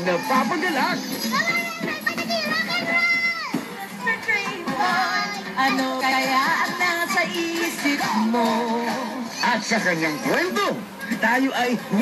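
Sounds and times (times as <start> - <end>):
young child singing: 1.3 - 7.6.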